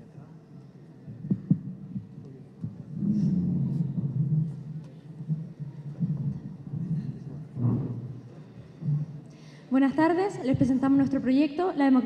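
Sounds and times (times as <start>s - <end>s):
faint murmuring: 0.0s - 9.4s
muffled thumps on microphone: 1.1s - 9.3s.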